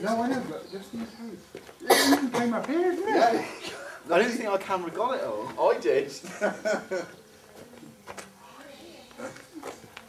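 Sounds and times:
laughter: 0:06.2 - 0:07.2
faint voices: 0:06.8 - 0:10.0.

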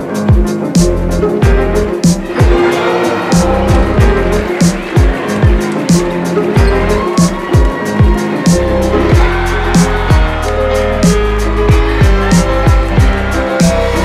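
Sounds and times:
hip-hop beat: 0:00.0 - 0:14.0.

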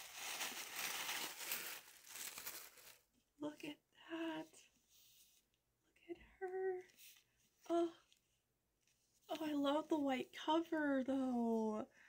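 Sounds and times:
tissue paper rustling: 0:00.0 - 0:03.1.

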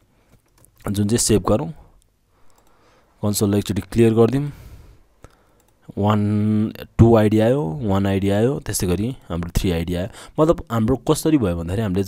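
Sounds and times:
man speaking: 0:00.8 - 0:01.9, 0:03.2 - 0:04.6, 0:05.9 - 0:12.0.

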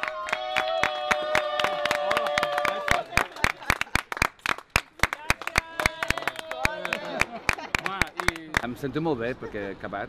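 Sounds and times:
group clapping unevenly: 0:00.0 - 0:08.8.

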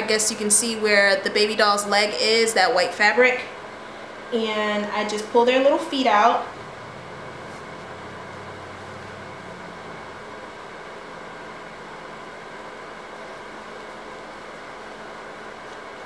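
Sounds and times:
room tone hum and hiss: 0:00.0 - 0:16.0.

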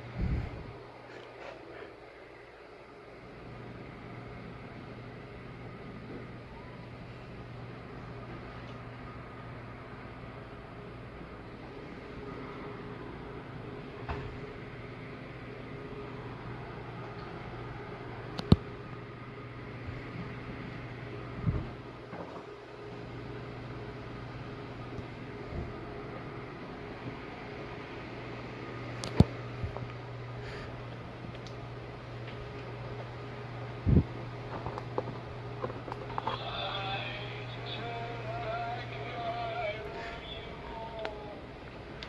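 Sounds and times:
low mechanical hum: 0:00.0 - 0:42.0.

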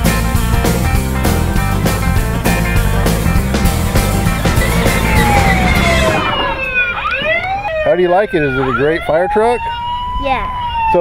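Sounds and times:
rock music with steady beat: 0:00.0 - 0:06.5
toy fire engine siren wailing: 0:04.6 - 0:11.0.

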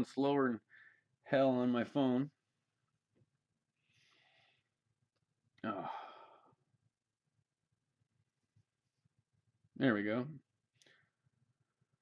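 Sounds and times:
man sighing: 0:05.6 - 0:06.6.

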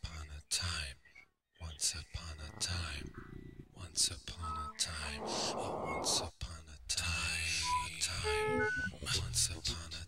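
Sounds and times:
whispery voice fragments: 0:01.7 - 0:06.3.

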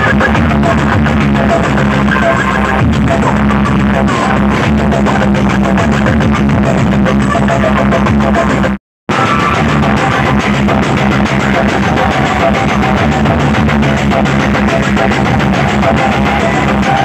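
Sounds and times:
held bass notes: 0:00.0 - 0:17.0
very loud music from loudspeakers: 0:00.0 - 0:17.0.

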